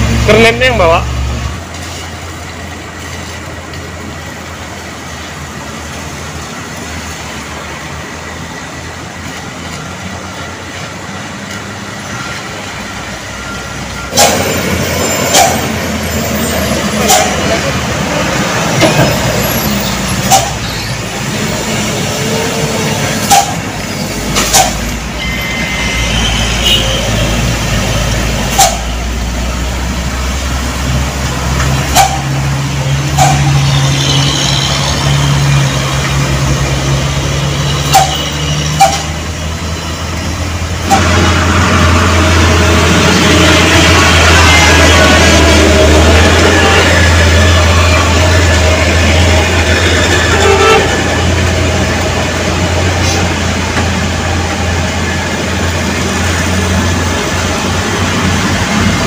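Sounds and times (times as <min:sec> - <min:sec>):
diesel truck engines droning: 0:00.0 - 0:59.0.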